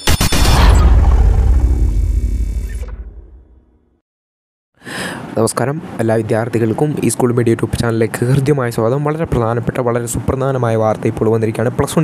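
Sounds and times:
deep low rumble: 0.4s - 3.6s.

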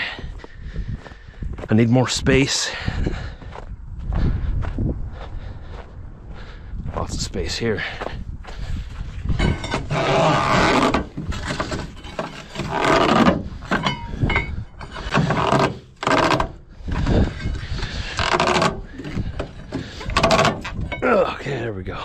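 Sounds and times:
strap winch being cranked: 9.5s - 21.0s.

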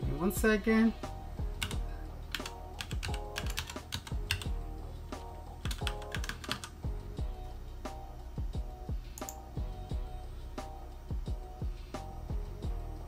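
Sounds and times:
computer keyboard typing: 1.6s - 4.5s, 5.6s - 6.8s.

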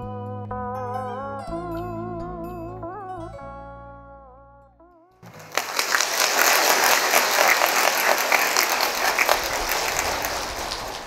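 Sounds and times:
large audience applauding: 5.2s - 11.0s.

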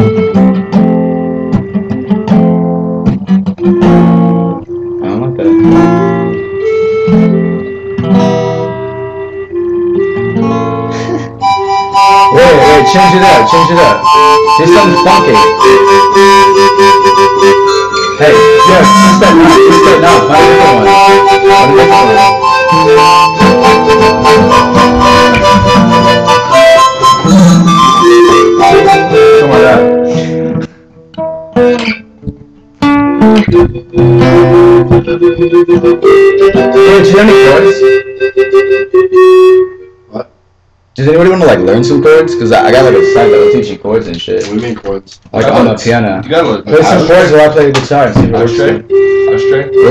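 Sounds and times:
long held instrument notes: 0.0s - 2.8s, 3.5s - 30.8s, 31.7s - 40.2s, 41.0s - 44.0s, 48.2s - 49.9s
acoustic guitar strumming: 0.0s - 40.4s, 41.0s - 44.8s, 45.4s - 49.9s.

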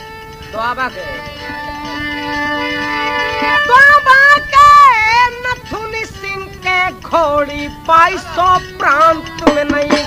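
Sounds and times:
high-pitched folk singing: 0.0s - 10.0s.

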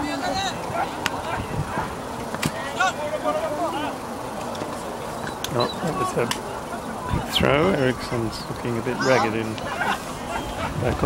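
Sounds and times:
voices calling and shouting: 0.0s - 11.0s.

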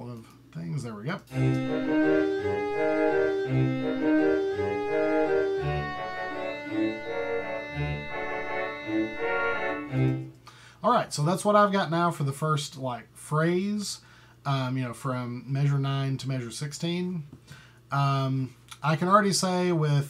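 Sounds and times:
clarinet melody: 1.3s - 10.4s
sampled concert band wind chords: 1.3s - 10.4s.

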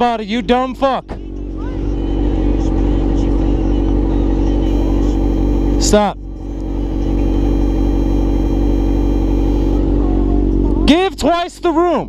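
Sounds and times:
motorcycle engine running: 2.3s - 10.6s.

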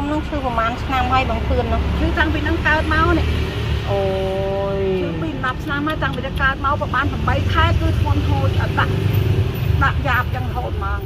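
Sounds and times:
woman talking: 0.0s - 9.1s, 9.7s - 11.0s
tuk-tuk engine rumbling: 0.0s - 11.0s.

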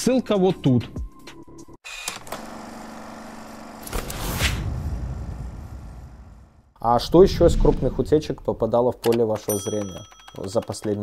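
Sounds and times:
whoosh sweep: 4.1s - 8.8s
low bass swell: 4.6s - 8.8s.

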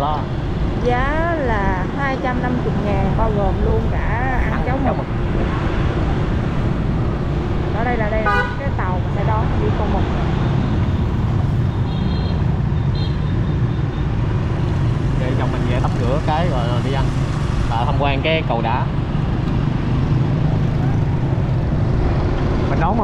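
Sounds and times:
voices: 0.0s - 6.8s, 7.6s - 10.6s, 15.2s - 18.9s.

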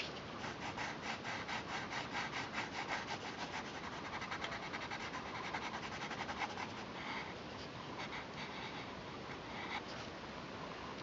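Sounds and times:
pencil shading on paper: 0.4s - 6.9s.

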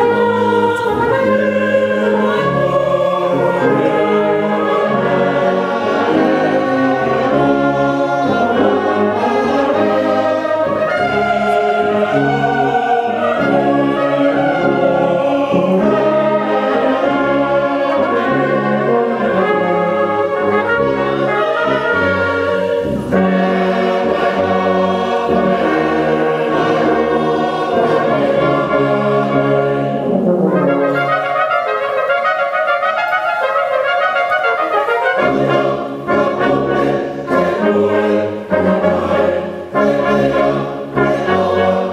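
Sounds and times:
brass band playing a hymn: 0.0s - 41.9s
congregation singing: 0.0s - 41.9s.

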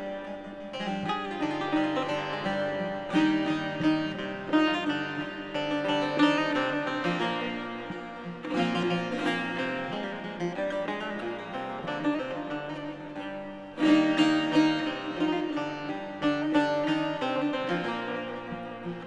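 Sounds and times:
plucked saz and guitar folk music: 0.0s - 19.0s.

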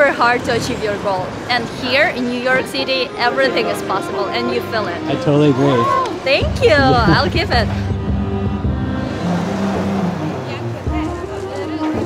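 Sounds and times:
city street traffic: 0.0s - 12.0s
background music with held notes: 2.0s - 12.0s.

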